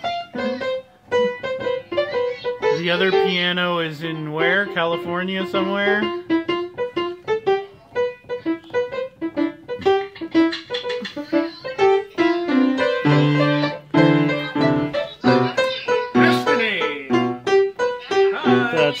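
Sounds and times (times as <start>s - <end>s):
upright piano notes and clusters: 0.0s - 19.0s.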